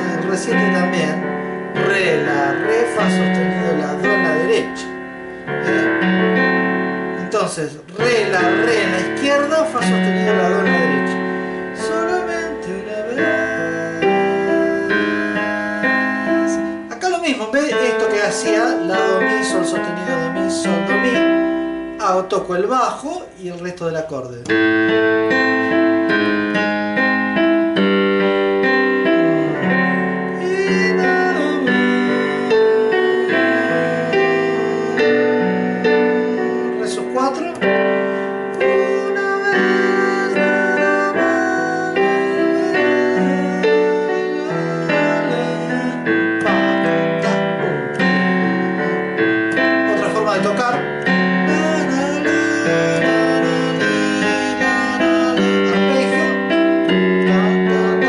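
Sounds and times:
digital piano playing slow bolero: 0:00.0 - 0:58.0.

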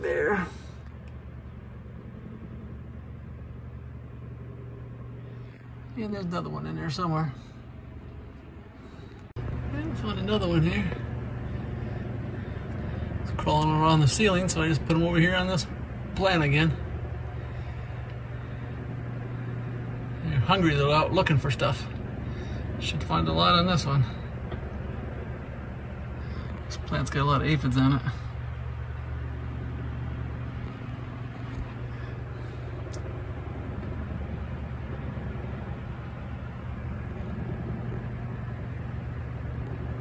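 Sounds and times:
low machine hum: 0:00.0 - 0:40.0.

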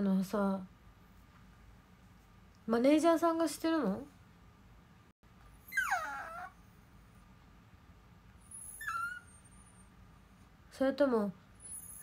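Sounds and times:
animal whining: 0:05.6 - 0:06.6, 0:08.4 - 0:09.9.

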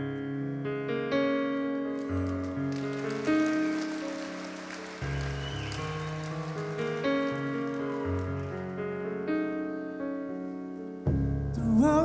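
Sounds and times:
grand piano chords: 0:00.0 - 0:12.0.

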